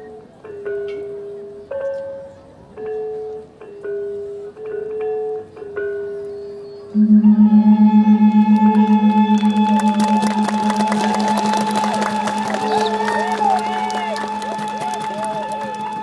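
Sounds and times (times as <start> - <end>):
bamboo flutes: 6.1 - 16.0
metallophone notes ringing: 6.9 - 14.5
large gong ringing: 7.0 - 12.7
gamelan ensemble playing: 7.0 - 16.0.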